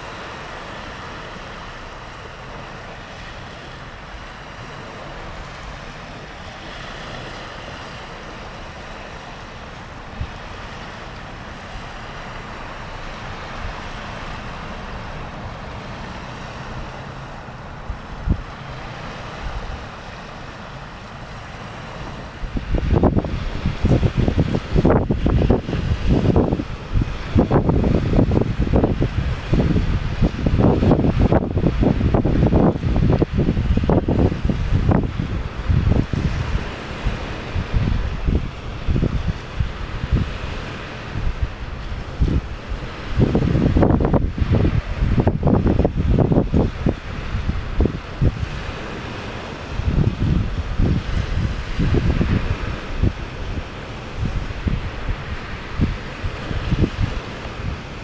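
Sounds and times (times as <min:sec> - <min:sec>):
sea surf washing: 0:00.0 - 0:58.0
wind buffeting microphone: 0:00.0 - 0:58.0.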